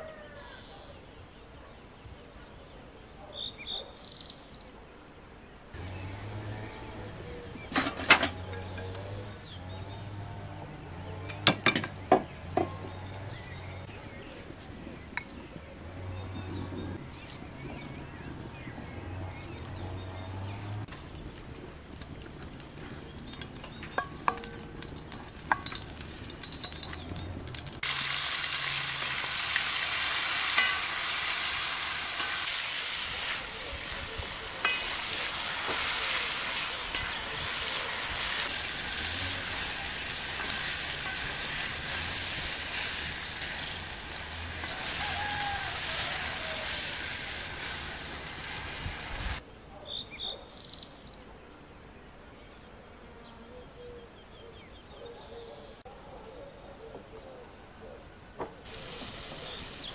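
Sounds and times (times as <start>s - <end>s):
birds chirping: 0.2s - 27.9s, 28.5s - 47.6s, 59.2s - 59.9s
food sizzling in a pan: 23.4s - 49.4s, 58.7s - 59.9s.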